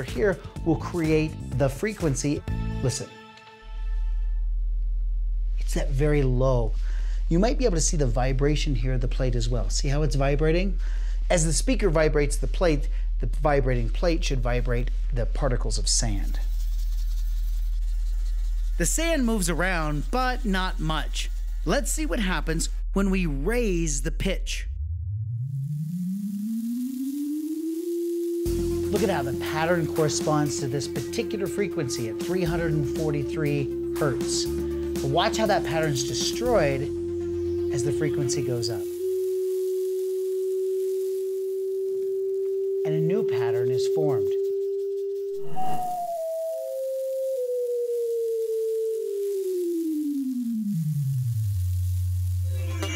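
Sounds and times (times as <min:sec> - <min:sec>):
sine-wave tone rising in pitch: 0:23.4 - 0:52.9.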